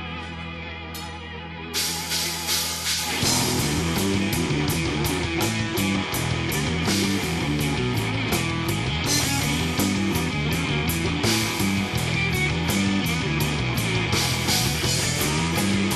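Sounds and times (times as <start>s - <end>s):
bass line: 0.0s - 15.9s
electric guitars: 0.0s - 15.9s
drums with cymbal strikes: 1.8s - 15.9s.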